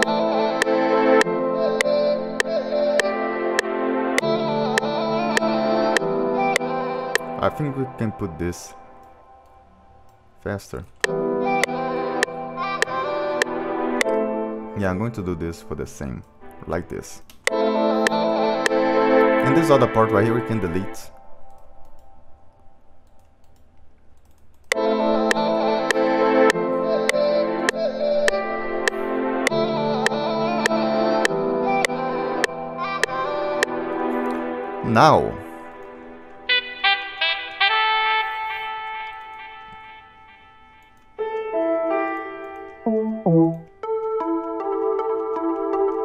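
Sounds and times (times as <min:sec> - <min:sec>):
piano-like keyboard chords: 0:00.0 - 0:22.5, 0:24.7 - 0:46.0
sharp metronome ticks: 0:00.6 - 0:07.3, 0:11.0 - 0:14.2, 0:27.0 - 0:33.7, 0:38.8 - 0:46.0
orchestral pad chord: 0:42.9 - 0:43.7.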